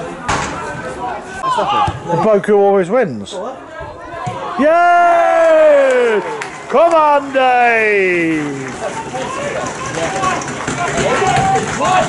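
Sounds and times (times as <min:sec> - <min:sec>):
crowd cheering: 0:03.8 - 0:12.0.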